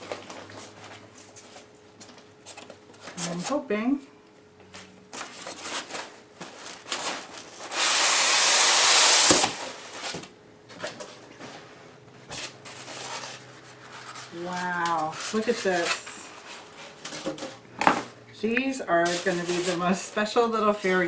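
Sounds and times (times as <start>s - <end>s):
styrofoam scraping out of box: 12.3s - 17.5s, 19.0s - 20.0s.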